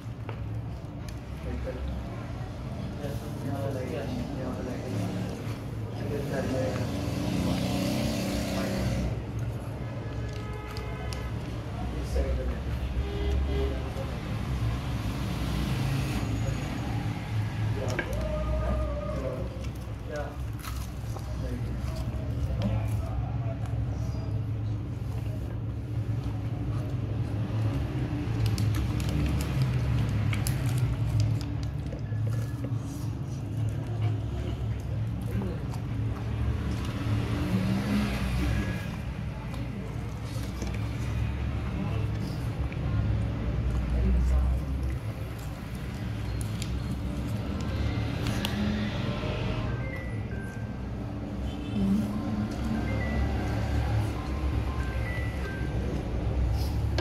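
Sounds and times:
fried chicken crackling: 27.4 - 31.8.

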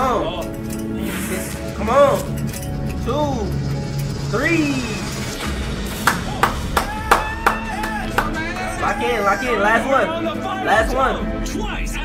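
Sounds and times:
background music: 0.0 - 12.0
rhythmic hand clapping: 5.9 - 9.1.

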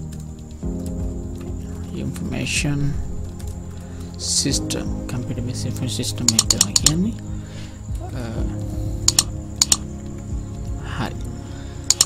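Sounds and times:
computer keyboard keystrokes: 6.2 - 7.0, 9.1 - 9.8.

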